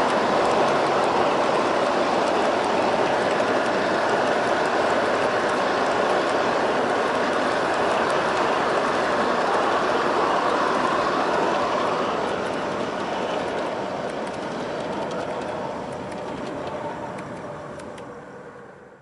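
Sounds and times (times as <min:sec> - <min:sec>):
model train wheels rolling on rails: 0:00.0 - 0:18.4.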